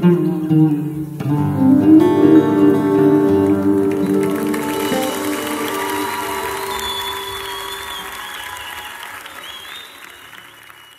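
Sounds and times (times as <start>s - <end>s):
guitar chord ringing: 0.0s - 8.0s
audience applauding: 2.0s - 10.9s.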